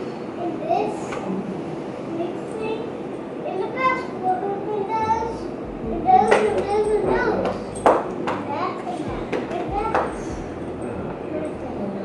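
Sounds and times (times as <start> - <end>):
young children talking: 0.4 - 12.0.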